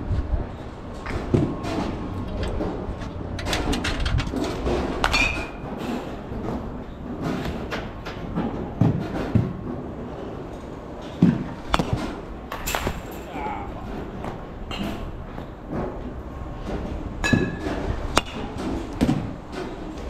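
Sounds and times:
clanks and knocks: 0:01.0 - 0:20.0
dull thuds: 0:11.2 - 0:13.2.

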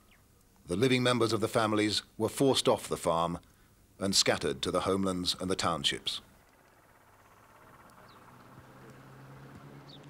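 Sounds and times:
bird chirp: 0:00.0 - 0:00.4, 0:06.1 - 0:10.0
low engine hum: 0:05.4 - 0:10.0.

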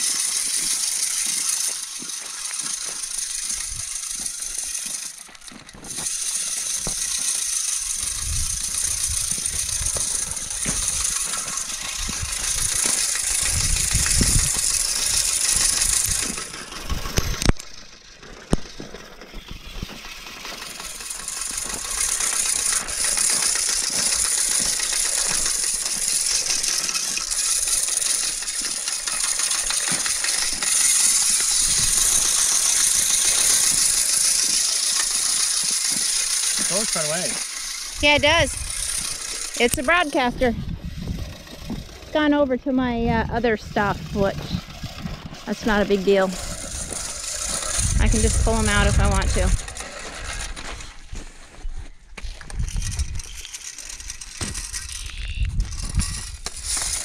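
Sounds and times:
seed spreader gear rattle: 0:00.0 - 0:57.0.

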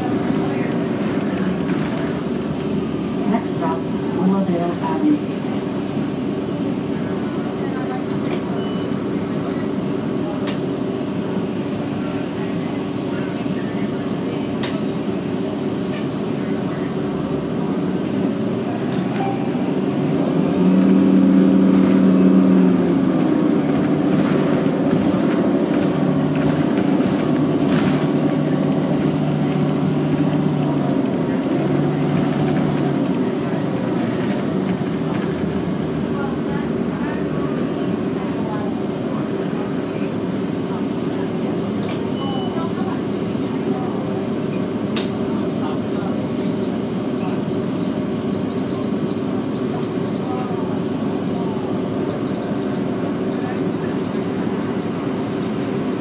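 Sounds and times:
bus drive hum: 0:00.0 - 0:56.0
road noise: 0:00.0 - 0:56.0.

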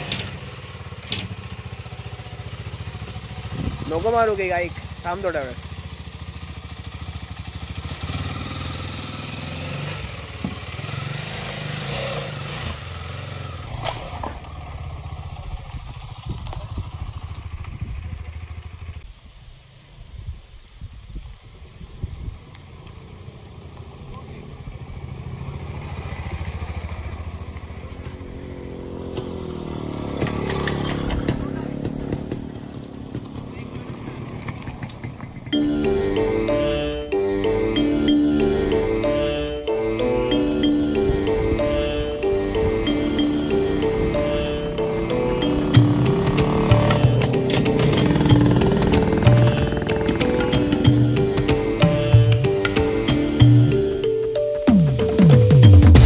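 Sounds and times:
motorcycle riding past: 0:00.0 - 0:19.1, 0:22.6 - 0:53.8
motorcycle engine idling: 0:00.0 - 0:19.2, 0:22.4 - 0:37.6, 0:42.6 - 0:53.7.

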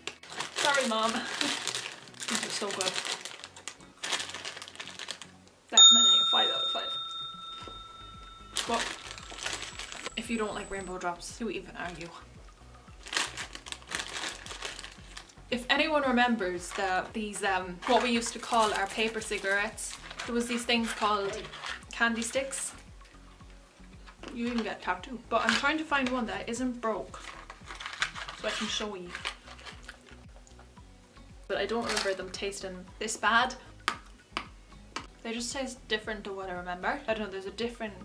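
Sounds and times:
candy stick crunching: 0:00.0 - 0:05.3, 0:08.5 - 0:10.1, 0:13.0 - 0:15.4, 0:27.2 - 0:30.2
plastic bag crinkling: 0:00.0 - 0:05.4, 0:08.5 - 0:10.8, 0:13.0 - 0:15.4, 0:17.8 - 0:21.8, 0:27.2 - 0:30.2
quiet background music: 0:00.0 - 0:38.0.

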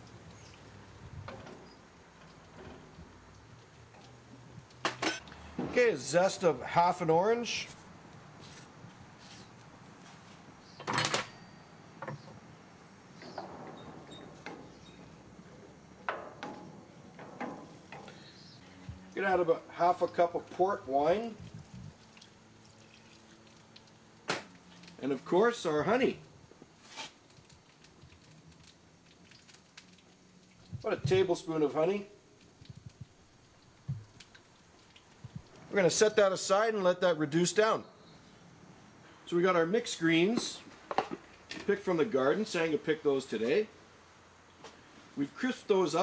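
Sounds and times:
fruit crackling in a pan: 0:00.0 - 0:05.6, 0:19.9 - 0:35.8.

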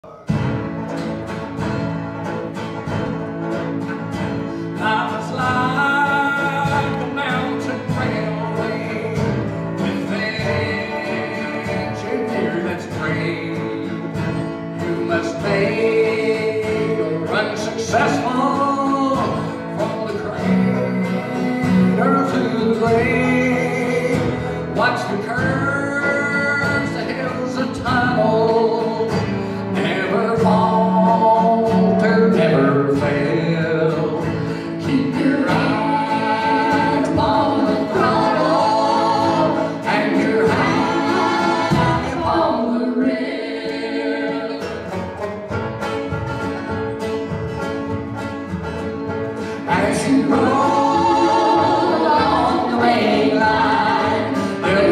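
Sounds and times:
plucked banjo: 0:00.0 - 0:54.9
strummed acoustic guitar: 0:00.0 - 0:54.9
man singing: 0:04.6 - 0:44.8, 0:49.4 - 0:54.9.

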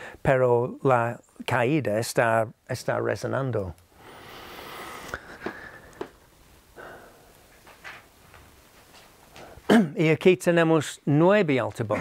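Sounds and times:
quiet scrapes: 0:04.0 - 0:05.8.

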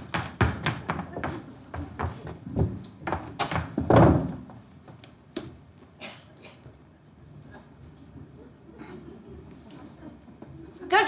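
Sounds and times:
footsteps on stage floor: 0:00.0 - 0:06.0.

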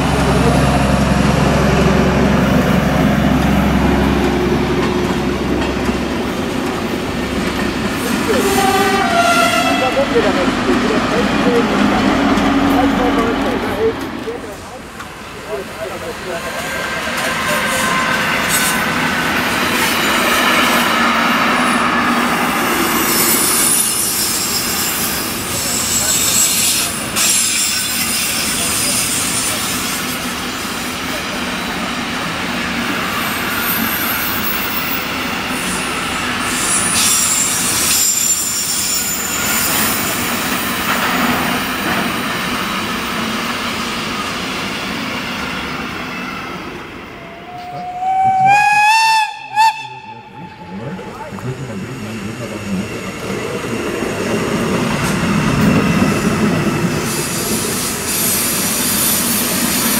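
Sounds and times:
freight train rolling past: 0:00.0 - 0:59.9
heavy rumble of maintenance train: 0:00.0 - 0:59.9
train horn: 0:08.3 - 0:10.1, 0:47.2 - 0:50.6
high wheel squeal: 0:21.6 - 0:30.2, 0:33.0 - 0:40.8.

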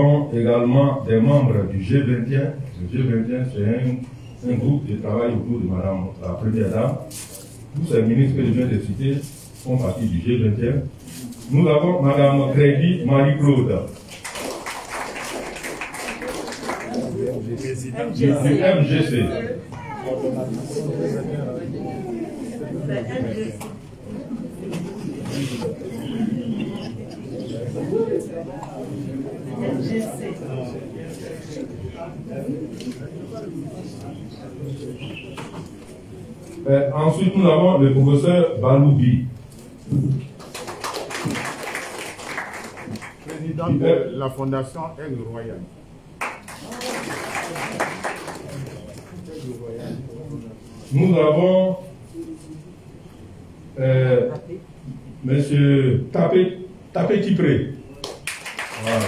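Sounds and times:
crowd clapping: 0:14.0 - 0:17.4, 0:40.3 - 0:43.4, 0:46.2 - 0:49.2, 0:58.0 - 0:59.0.

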